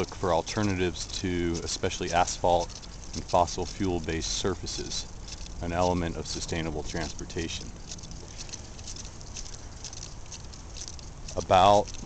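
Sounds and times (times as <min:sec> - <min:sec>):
bicycle tyres on wet asphalt: 0:00.0 - 0:12.0
crackling ticks from water: 0:00.0 - 0:12.0.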